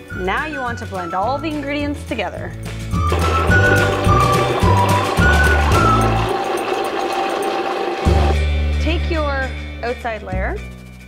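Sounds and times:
background music: 0:00.0 - 0:11.0
blender whirring: 0:03.0 - 0:08.5.

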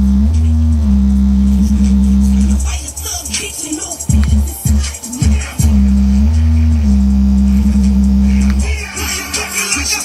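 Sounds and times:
bass-heavy music through speaker: 0:00.0 - 0:10.0.

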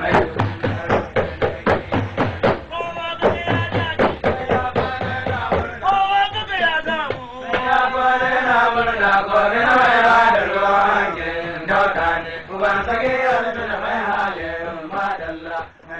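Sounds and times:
person chanting: 0:00.0 - 0:06.4.

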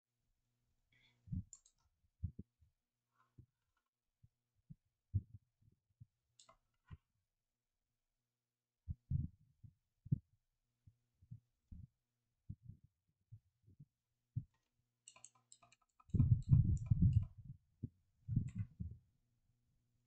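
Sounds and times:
computer keyboard typing: 0:15.1 - 0:17.4.

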